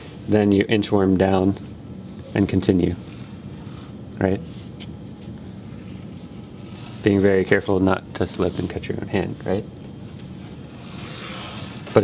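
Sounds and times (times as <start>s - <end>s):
low room hum: 0.0s - 12.0s
knife scoring cardboard: 5.8s - 7.8s, 10.1s - 12.0s.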